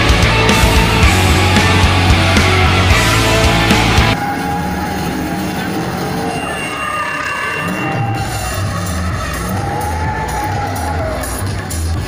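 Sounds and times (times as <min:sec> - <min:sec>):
loud music with bass beat: 0:00.0 - 0:04.2, 0:08.1 - 0:12.0.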